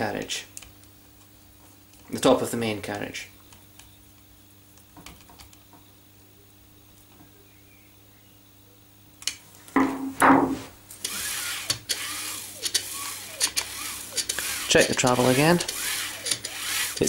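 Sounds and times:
faint room hum: 0.0s - 17.0s
rustling hiss: 10.9s - 17.0s
screw creaking into plastic: 11.0s - 17.0s
screwdriver click: 11.0s - 17.0s.

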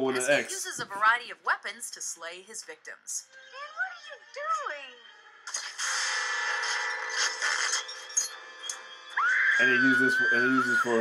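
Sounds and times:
short scraping noises: 5.5s - 8.1s.

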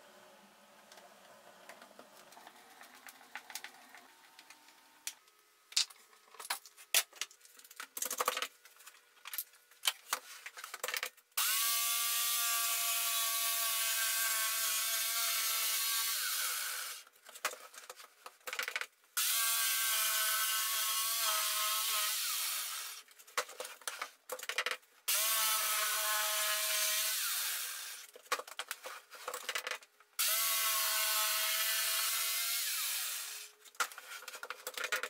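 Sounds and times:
jigsaw cutting board: 10.7s - 17.6s, 18.5s - 35.0s
knocks and rattles of board: 23.3s - 24.8s.

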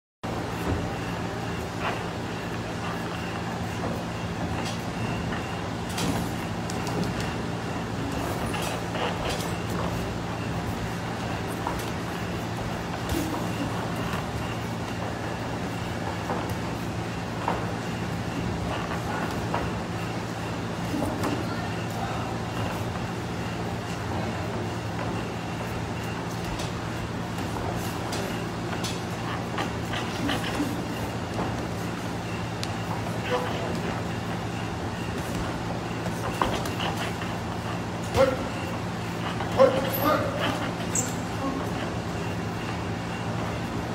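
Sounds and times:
steady low hum: 0.3s - 43.9s.

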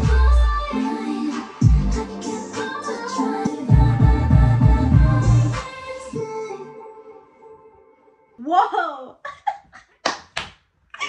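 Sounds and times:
woman laughing: 8.5s - 10.0s.

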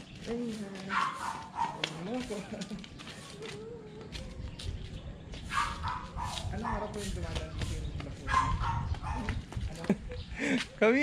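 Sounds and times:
dog barking: 0.9s - 2.0s, 5.5s - 6.9s, 8.3s - 9.4s
small children's voices: 2.6s - 6.2s.

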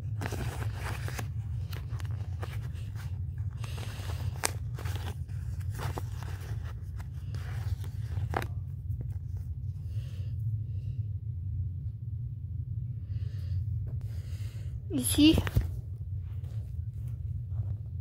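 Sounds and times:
paper sticker sheet rustling: 0.0s - 9.4s.

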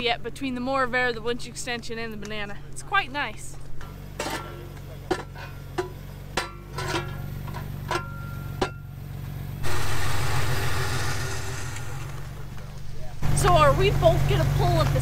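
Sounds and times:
vehicle engine idling: 0.0s - 15.0s
wheel chocks knocking: 3.6s - 15.0s
loud rushing hiss: 9.6s - 13.3s.

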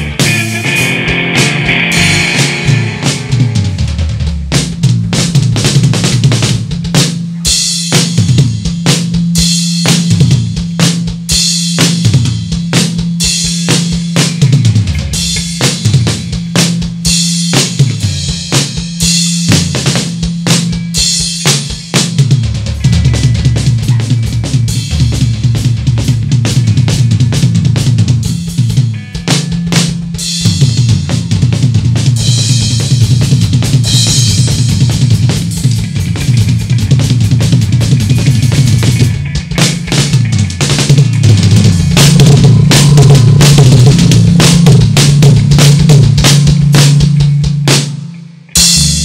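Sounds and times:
cymbal crashes: 0.0s - 4.3s, 39.6s - 47.1s
rock drum kit playing fast: 0.0s - 49.0s.

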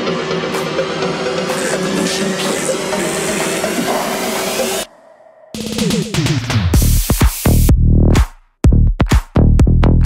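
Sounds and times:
electronic dance music build-up: 0.0s - 8.4s.

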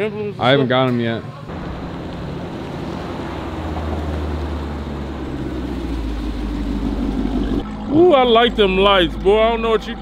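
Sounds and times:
outdoor noise: 0.0s - 10.0s
car engine running: 1.5s - 10.0s.

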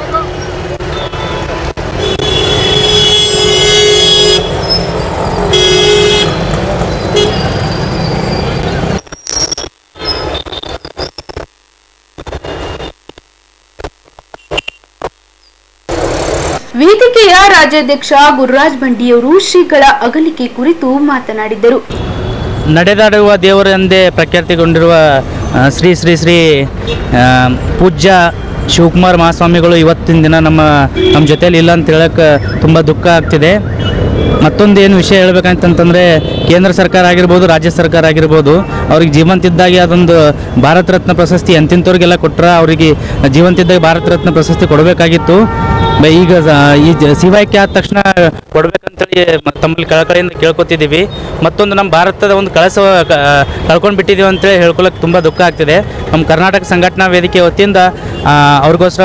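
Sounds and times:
street traffic: 0.0s - 14.6s, 15.2s - 59.0s
vehicle horns honking: 0.9s - 8.7s, 30.9s - 31.7s, 33.8s - 34.5s, 35.9s - 36.8s, 43.4s - 47.8s
man speaking into a microphone: 22.6s - 33.7s, 34.4s - 59.0s.

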